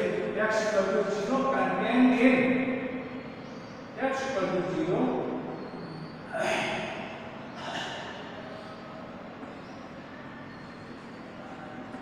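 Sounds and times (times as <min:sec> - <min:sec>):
man breathing noisily: 0:07.4 - 0:09.0.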